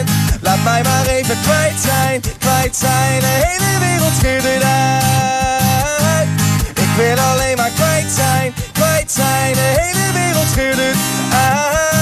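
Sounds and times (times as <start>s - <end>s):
man singing wordless notes: 0.0s - 12.0s
strummed acoustic guitar: 0.0s - 12.0s.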